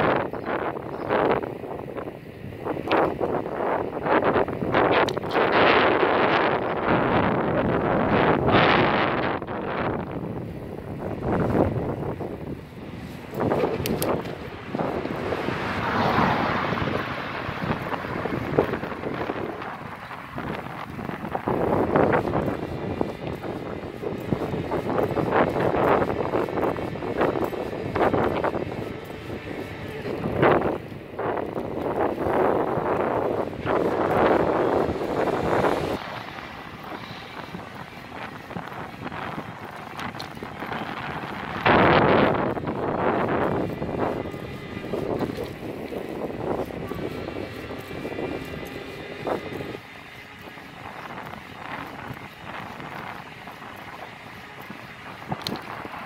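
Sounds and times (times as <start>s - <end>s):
wind buffeting microphone: 0.0s - 56.0s
motorcycle engine running: 5.7s - 56.0s.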